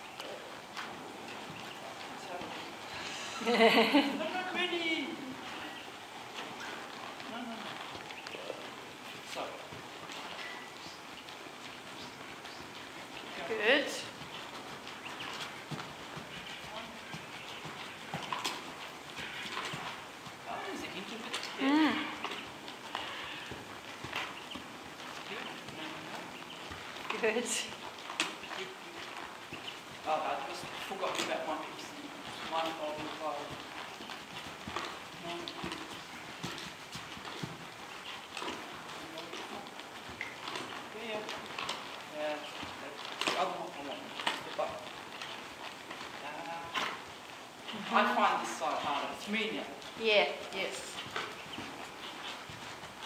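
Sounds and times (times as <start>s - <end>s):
horse hooves on soft footing: 0.0s - 53.0s.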